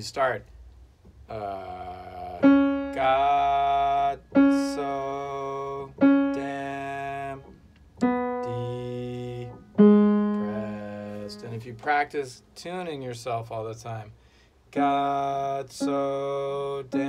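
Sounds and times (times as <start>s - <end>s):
man singing held syllable: 1.3s - 11.8s, 14.7s - 17.0s
single piano notes: 2.4s - 12.0s.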